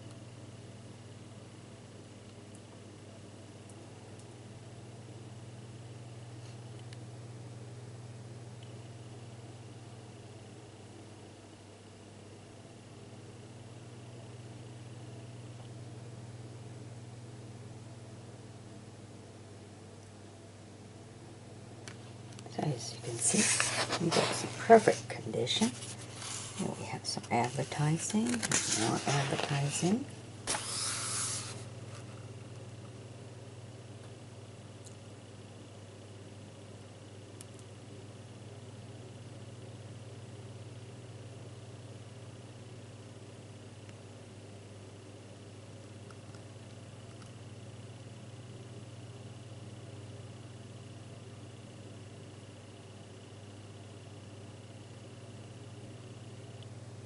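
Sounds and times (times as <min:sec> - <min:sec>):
steady low hum: 0:00.0 - 0:57.0
page turning rustle: 0:23.1 - 0:32.2
even hiss: 0:30.4 - 0:31.7.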